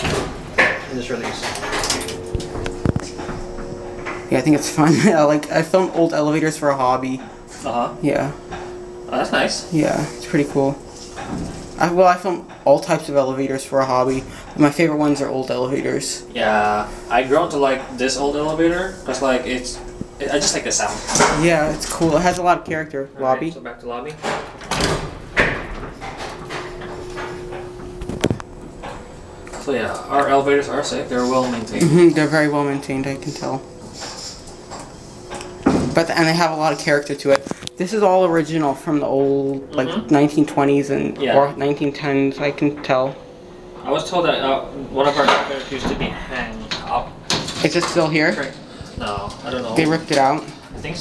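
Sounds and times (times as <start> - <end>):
elevator machinery hum: 0.0 - 51.0.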